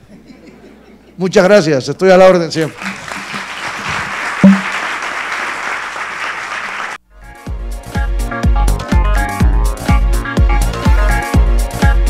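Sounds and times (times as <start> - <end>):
audience applauding: 2.6 - 7.0
electronic dance music: 2.8 - 3.6, 4.4 - 4.8.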